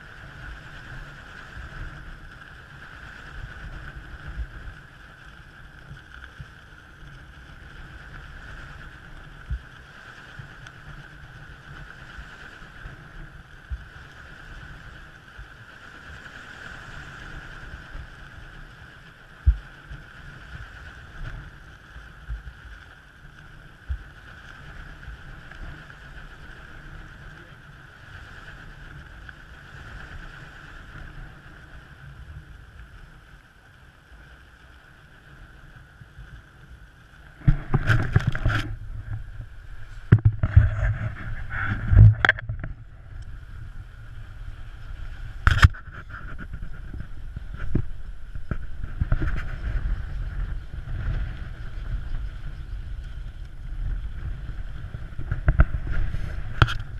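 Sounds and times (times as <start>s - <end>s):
wind buffeting microphone: 0.0s - 33.4s, 34.7s - 56.9s.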